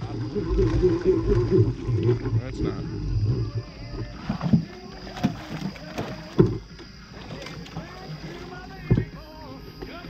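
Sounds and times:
water splashing: 0:00.0 - 0:10.0
knocks against boat: 0:04.3 - 0:09.2.

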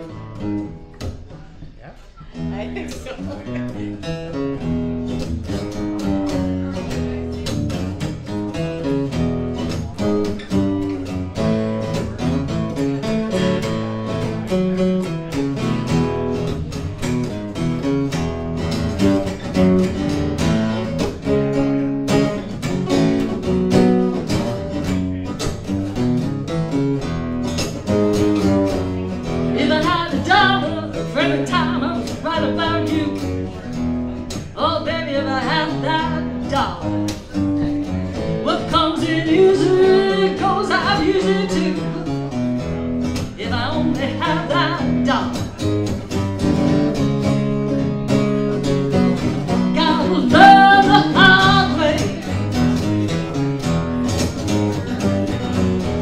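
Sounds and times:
acoustic guitars playing blues: 0:00.0 - 0:56.0
person singing: 0:29.5 - 0:33.3, 0:38.2 - 0:42.2, 0:43.4 - 0:45.4, 0:49.7 - 0:52.4.

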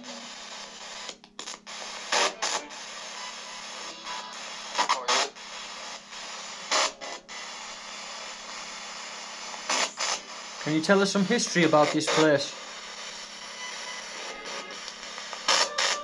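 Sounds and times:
electronic static hiss: 0:00.0 - 0:16.0
crackle bursts: 0:06.7 - 0:16.0.

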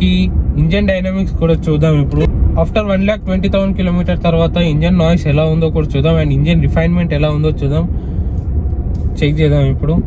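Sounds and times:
man talking: 0:00.0 - 0:07.9, 0:09.2 - 0:10.0
car cabin engine and road rumble: 0:00.0 - 0:10.0.

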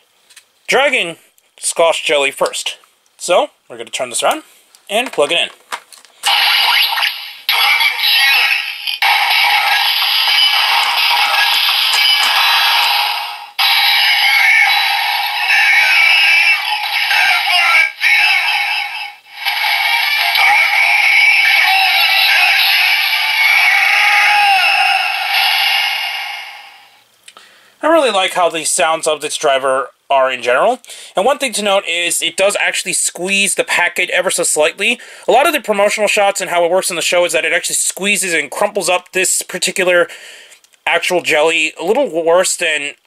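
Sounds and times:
synthesized voice announcements: 0:07.5 - 0:12.9, 0:13.6 - 0:26.2
looping electronic music: 0:09.0 - 0:18.6.

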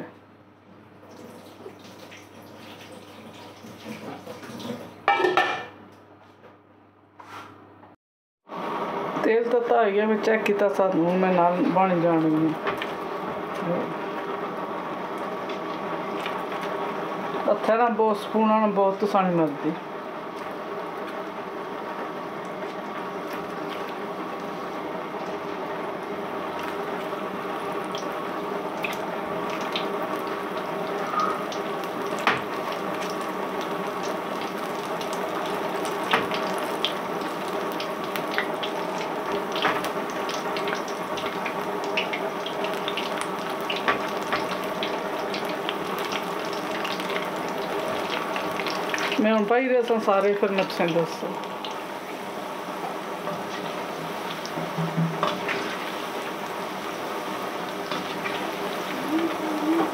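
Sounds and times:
batter sizzling in hot oil: 0:11.2 - 0:59.9.

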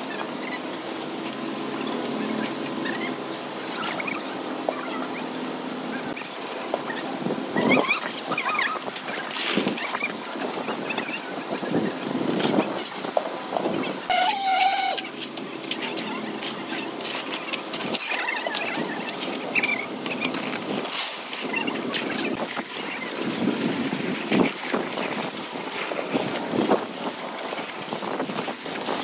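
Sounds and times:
short squeaks: 0:14.1 - 0:15.2
tools scraping wet concrete: 0:14.1 - 0:23.4.

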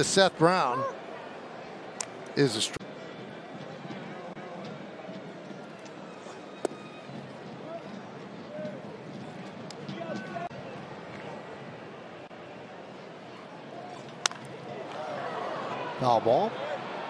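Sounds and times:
crowd murmur: 0:00.0 - 0:16.0.

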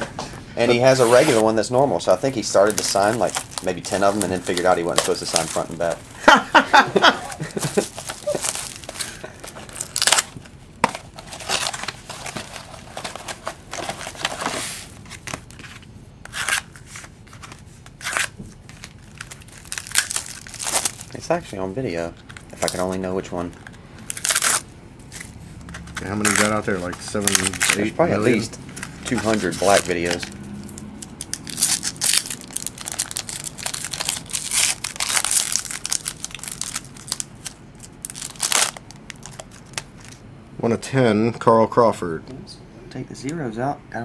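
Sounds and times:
plastic wrapper crinkling: 0:02.1 - 0:06.2, 0:07.3 - 0:21.3, 0:22.2 - 0:40.2
cards being handled: 0:02.2 - 0:06.1, 0:07.3 - 0:21.2, 0:22.2 - 0:40.2.

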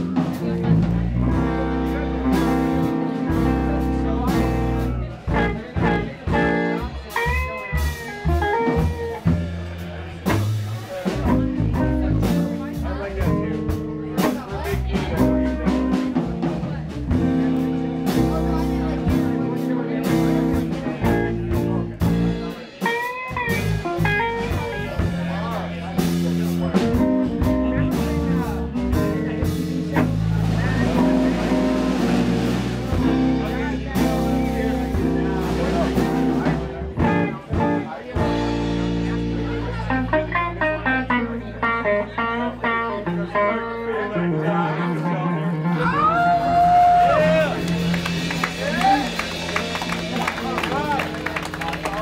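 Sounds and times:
picked electric guitar notes: 0:00.0 - 0:10.5, 0:11.1 - 0:52.0
low bass notes: 0:00.0 - 0:22.7, 0:23.3 - 0:52.0.

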